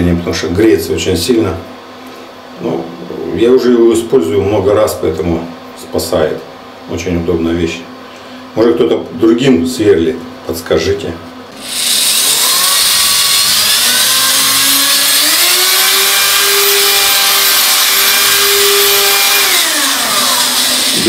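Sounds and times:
electric drill motor whine: 11.5 - 21.0
drill bit grinding tile: 11.6 - 21.0.

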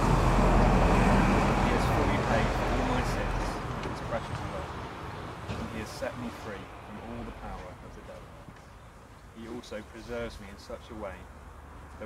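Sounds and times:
vehicle passing: 0.0 - 8.5.

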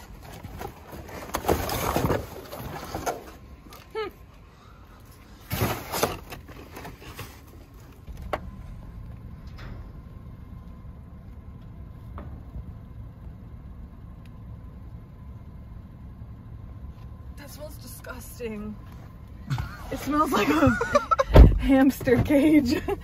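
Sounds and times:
cardboard rustling and scraping: 0.0 - 3.7, 5.3 - 8.2
car engine rumble: 0.0 - 23.0.

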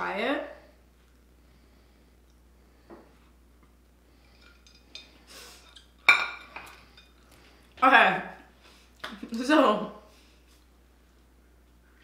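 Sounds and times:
plate clinking on stone countertop: 6.0 - 7.1.

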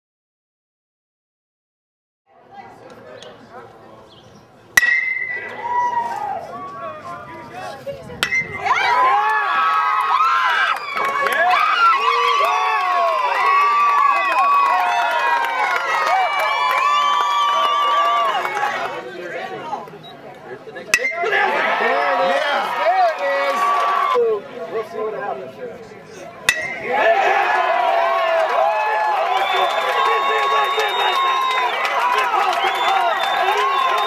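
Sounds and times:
metal bat hitting ball: 4.8 - 5.6, 8.2 - 8.6, 20.9 - 21.3, 26.5 - 27.0
crowd cheering and shouting: 4.9 - 7.5, 8.2 - 19.7, 21.0 - 24.4, 26.5 - 34.0.

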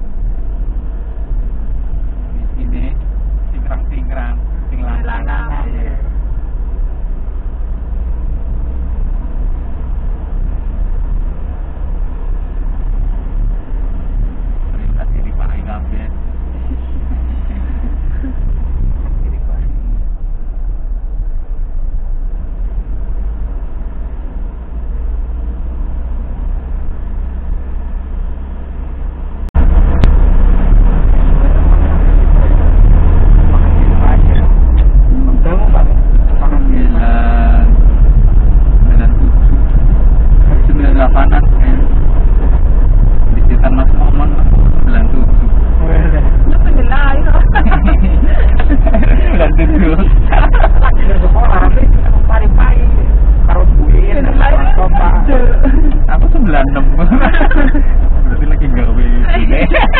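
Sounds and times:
vehicle engine and road rumble: 0.0 - 59.9
indistinct voices talking: 12.2 - 21.6, 29.6 - 59.9.

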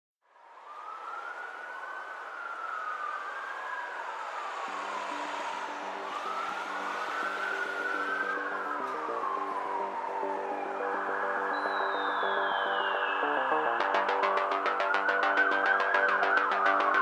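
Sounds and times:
police siren wailing: 0.3 - 17.0
low synth notes: 5.4 - 17.0.

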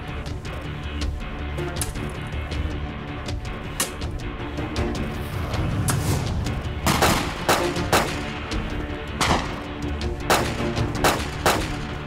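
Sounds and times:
dramatic background music: 0.0 - 12.0
gunshots: 6.8 - 12.0.

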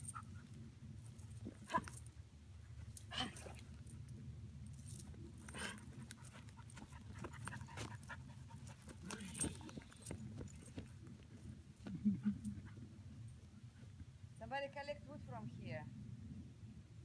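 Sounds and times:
dog panting: 5.6 - 10.8.

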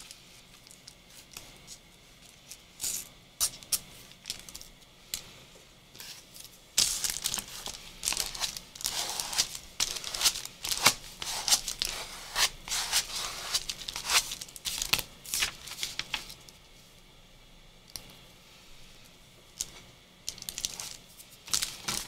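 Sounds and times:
cardboard rubbing on paper: 7.5 - 14.4.

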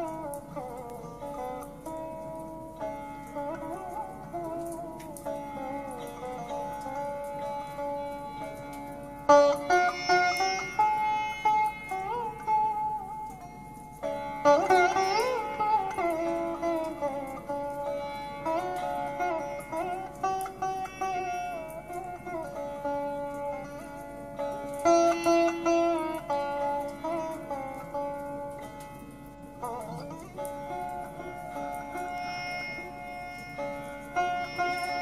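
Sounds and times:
sitar playing slow melody: 0.0 - 35.0.

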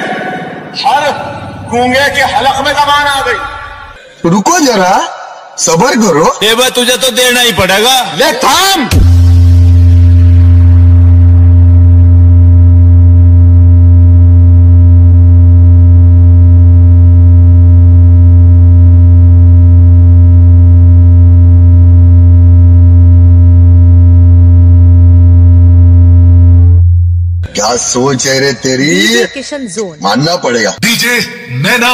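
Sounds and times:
deep bass test tone: 8.9 - 27.5.

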